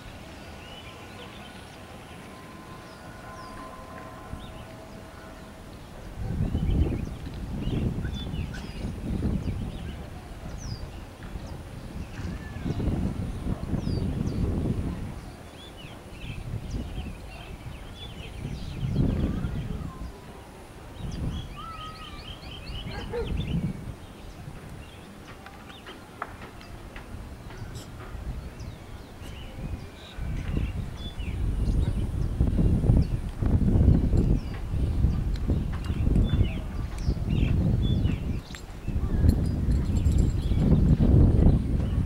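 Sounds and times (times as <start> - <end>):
low rumbling noise: 0.0 - 25.2
wind buffeting microphone: 0.0 - 42.0
small birds chirping: 15.2 - 42.0.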